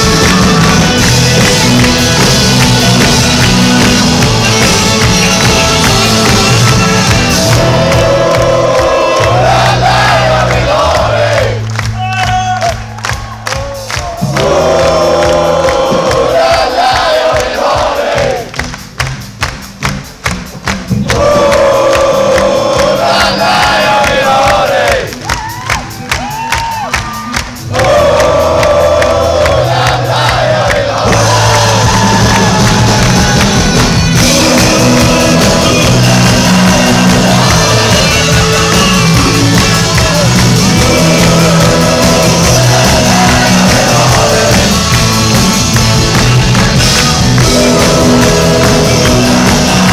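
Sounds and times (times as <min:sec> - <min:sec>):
live rock band playing: 0:00.0 - 0:11.1, 0:18.5 - 0:49.9
crowd singing along: 0:00.0 - 0:11.6, 0:14.3 - 0:18.5, 0:21.1 - 0:25.2, 0:27.7 - 0:49.9
crowd cheering: 0:00.0 - 0:18.5, 0:21.0 - 0:49.9
steady clapping beat: 0:00.0 - 0:49.9.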